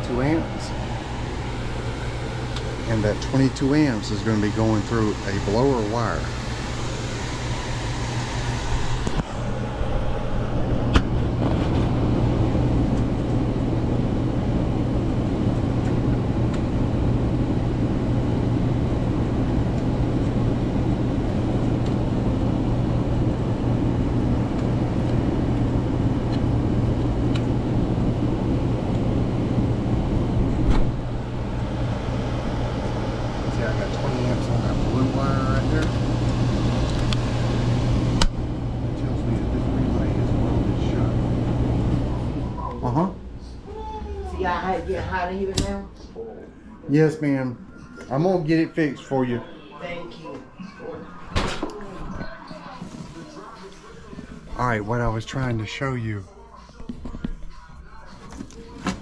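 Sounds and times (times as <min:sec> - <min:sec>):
blower running: 0:00.0 - 0:55.9
low electrical hum: 0:00.0 - 0:59.0.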